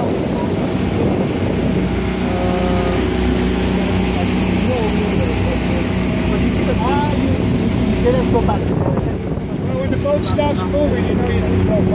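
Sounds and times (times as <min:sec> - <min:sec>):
wind rushing: 0:00.0 - 0:02.3
boat motor droning: 0:00.0 - 0:11.9
water rushing: 0:00.0 - 0:11.9.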